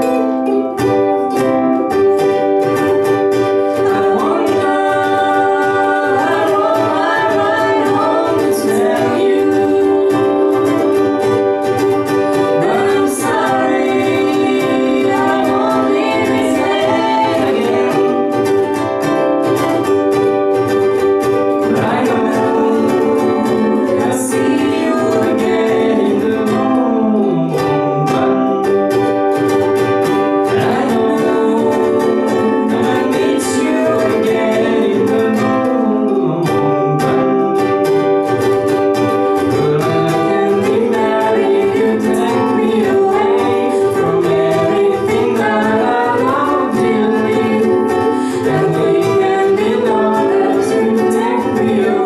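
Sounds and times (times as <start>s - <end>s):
ukuleles strumming: 0.0s - 52.0s
woman singing: 0.0s - 52.0s
man singing: 3.5s - 19.8s, 21.4s - 29.7s, 30.3s - 52.0s.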